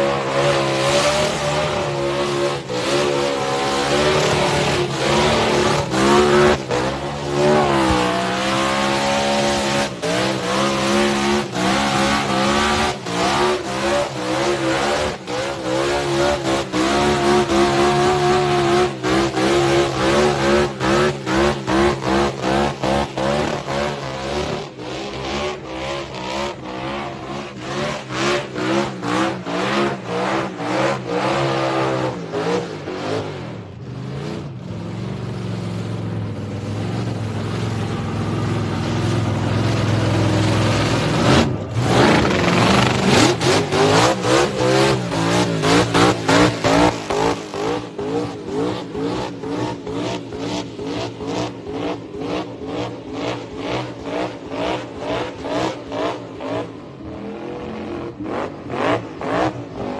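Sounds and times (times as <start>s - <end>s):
car engine revving hard: 0.0s - 33.6s, 39.2s - 59.9s.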